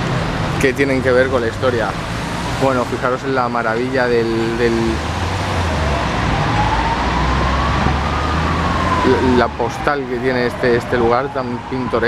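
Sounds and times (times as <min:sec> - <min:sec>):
city traffic rumble: 0:00.0 - 0:12.0
siren wailing: 0:02.6 - 0:12.0.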